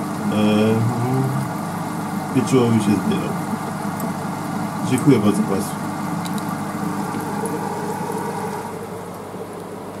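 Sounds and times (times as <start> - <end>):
aquarium equipment humming: 0.0 - 10.0
faint clicks: 6.2 - 6.5.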